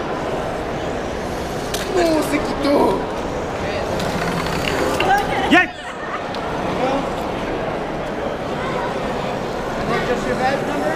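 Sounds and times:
crowded hall noise: 0.0 - 10.9
robot electric motors and tracks: 3.8 - 5.4.

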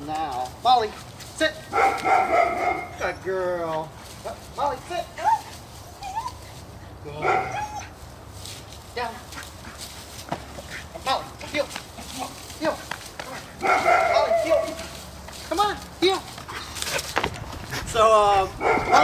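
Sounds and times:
dog drawn-out call: 1.7 - 3.2, 13.6 - 14.9
puppy barking: 1.7 - 3.2, 7.2 - 7.9, 13.3 - 14.9, 18.6 - 19.0.

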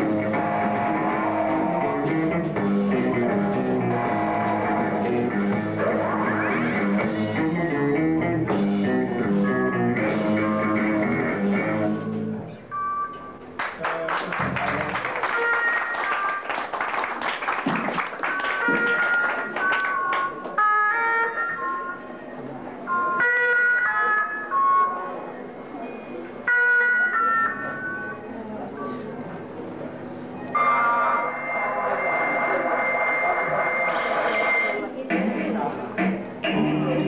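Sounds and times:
rock band droning chord: 0.0 - 12.5
electric guitar: 0.0 - 12.6
bass guitar: 0.0 - 12.7, 35.2 - 37.0.

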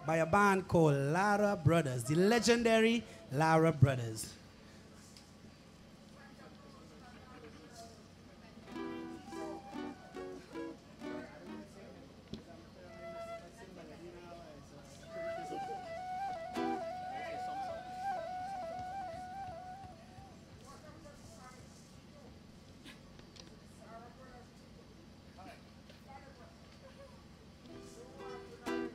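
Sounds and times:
flute trilling: 8.7 - 11.4, 12.8 - 13.8, 15.0 - 20.4
acoustic guitar plucked: 8.7 - 11.7, 15.4 - 19.9, 27.8 - 28.9.

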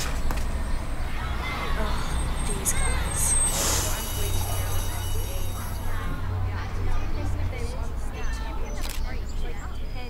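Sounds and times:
bus engine rumble: 0.0 - 10.0
air brakes hiss: 3.1 - 5.8.

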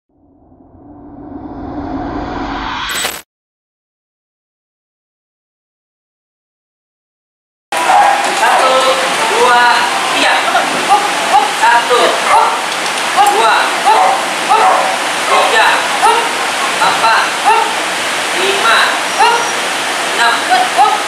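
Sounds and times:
steady background hiss: 7.8 - 21.0
small dog yapping: 12.2 - 12.6
person speaking commands: 13.2 - 17.8, 20.2 - 21.0.

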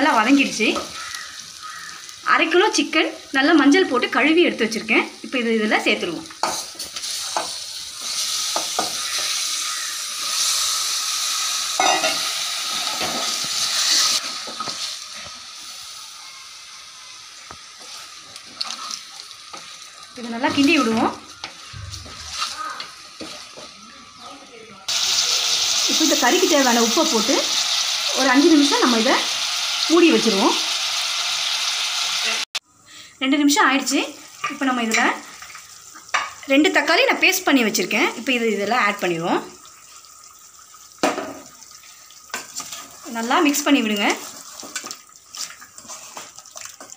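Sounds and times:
woman talking: 0.0 - 0.9, 2.3 - 6.3, 20.2 - 21.2, 25.9 - 27.5, 28.1 - 29.3, 29.9 - 30.7, 33.2 - 35.2, 36.5 - 39.5, 43.1 - 44.2
chicken sizzling in hot oil: 0.0 - 24.2, 24.9 - 32.6, 33.5 - 46.9
wooden spatula scraping pot: 20.5 - 23.7, 44.2 - 46.9.

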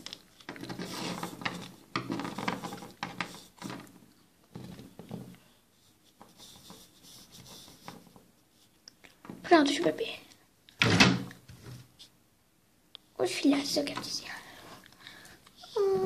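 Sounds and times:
plastic toys scraping on table: 0.4 - 5.4.

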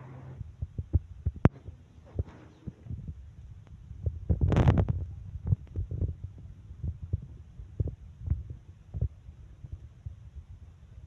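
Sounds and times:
microphone handling thumps: 0.4 - 3.2, 3.9 - 10.2
wind rushing on microphone: 2.2 - 10.7.

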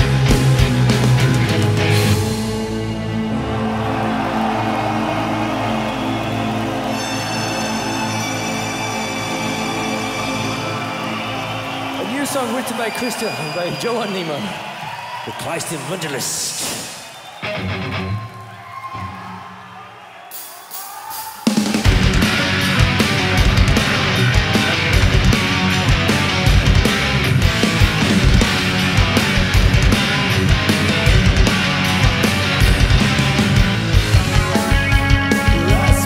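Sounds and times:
full metal band playing: 0.0 - 13.0, 17.4 - 18.2, 21.4 - 36.0
crowd cheering and whooping: 2.0 - 36.0.

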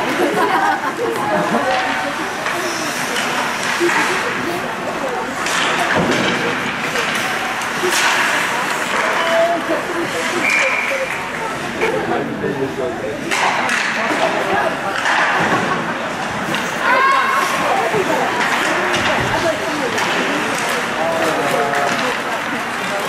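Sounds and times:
spectators chattering: 0.0 - 23.0
hockey stick and puck clacks: 1.0 - 11.9, 13.2 - 23.0.

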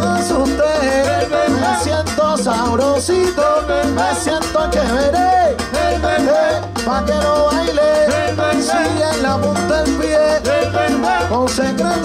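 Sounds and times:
person singing: 0.0 - 12.0
salsa band playing: 0.0 - 12.0.

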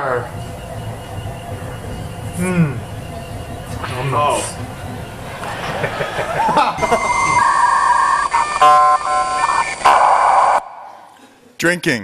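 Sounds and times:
stepping electronic tones: 6.4 - 10.8.

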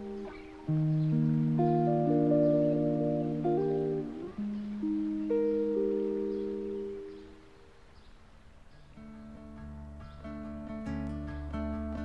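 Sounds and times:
acoustic guitar notes: 0.0 - 7.9, 8.7 - 12.0.

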